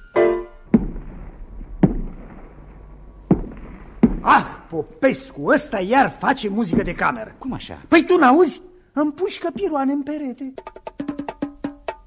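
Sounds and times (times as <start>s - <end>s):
piano chord: 0.0s - 0.8s.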